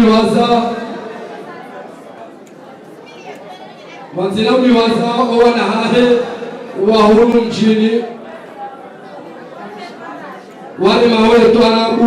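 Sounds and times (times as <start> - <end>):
background chatter of voices: 0.0 - 12.0.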